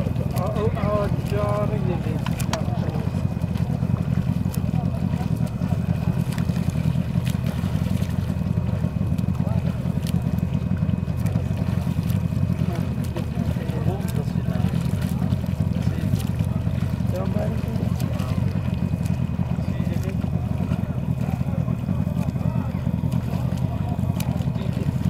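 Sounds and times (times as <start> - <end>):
boat motor rumbling: 0.0 - 25.0
faint voices: 0.0 - 25.0.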